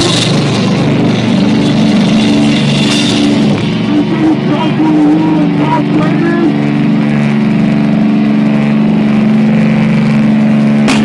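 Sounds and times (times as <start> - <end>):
heavy rock band playing: 0.0 - 11.0.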